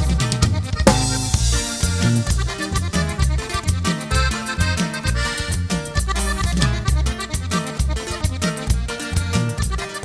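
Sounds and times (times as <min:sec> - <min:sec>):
bajo sexto strumming: 0:00.0 - 0:10.0
button accordion: 0:00.0 - 0:10.0
drum kit beat: 0:00.0 - 0:10.0
electric bass: 0:00.0 - 0:10.0.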